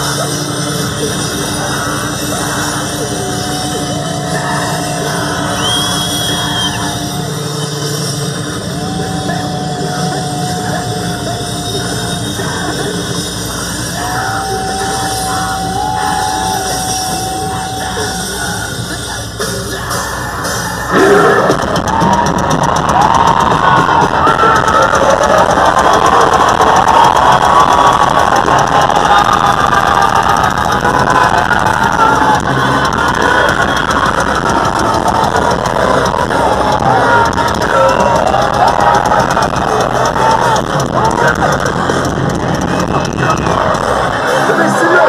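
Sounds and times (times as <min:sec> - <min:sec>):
crowd cheering and screaming: 0:00.0 - 0:45.0
music from loudspeakers: 0:00.0 - 0:45.0.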